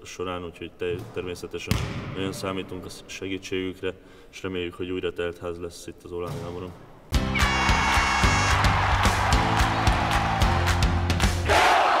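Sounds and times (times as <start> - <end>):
music with driving beat: 7.2 - 11.5.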